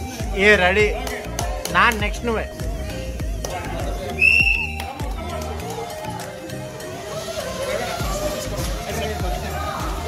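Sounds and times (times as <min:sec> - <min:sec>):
background music with beat: 0:00.0 - 0:10.0
high whistle blast: 0:04.2 - 0:04.8.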